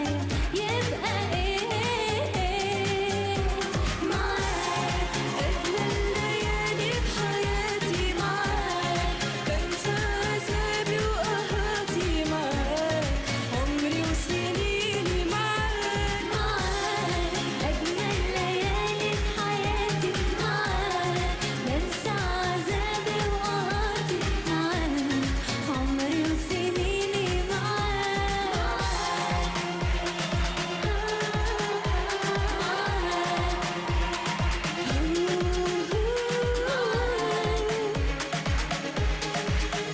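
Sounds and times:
pop song with female vocals: 0.0s - 39.9s
kick drum beat: 3.4s - 9.7s, 26.8s - 39.9s.

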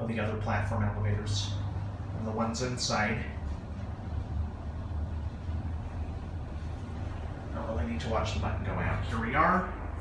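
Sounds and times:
elevator hum and rumble: 0.0s - 10.0s.

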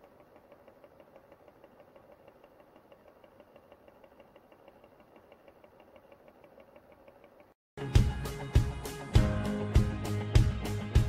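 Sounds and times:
turntable motor hum and ticking: 0.0s - 7.6s.

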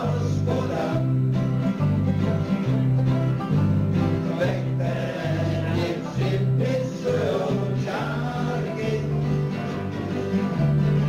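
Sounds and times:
man singing: 0.0s - 1.1s, 4.3s - 9.5s
guitars strumming: 0.0s - 11.0s.

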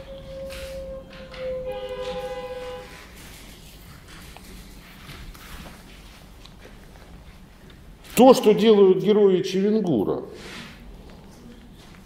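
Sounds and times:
steady held tone: 0.0s - 3.0s.

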